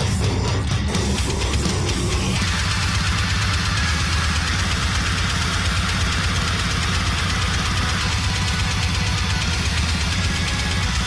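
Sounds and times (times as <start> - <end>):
death metal music: 0.0 - 11.0.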